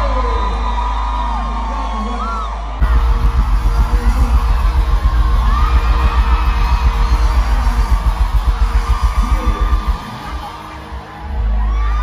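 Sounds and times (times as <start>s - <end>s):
heavy pulsing bass beat: 2.8s - 12.0s.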